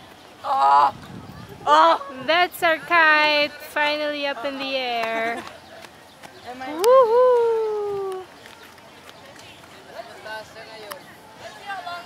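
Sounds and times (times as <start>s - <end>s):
woman cheering: 6.7s - 8.2s.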